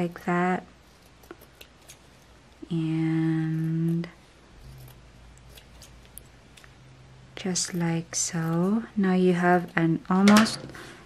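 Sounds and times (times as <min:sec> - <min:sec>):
scissors snipping felt: 0:01.0 - 0:02.1, 0:03.0 - 0:06.8.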